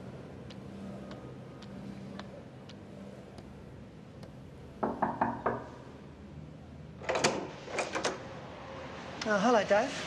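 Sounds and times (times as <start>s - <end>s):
knuckles knocking on wooden door: 4.8s - 5.7s
door unlatched and opened: 7.0s - 8.2s.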